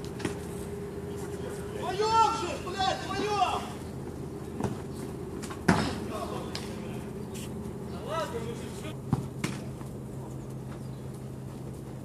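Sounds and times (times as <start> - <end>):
steady low hum: 0.0 - 12.0
player shouting: 1.8 - 3.8
football being kicked: 9.1 - 9.7.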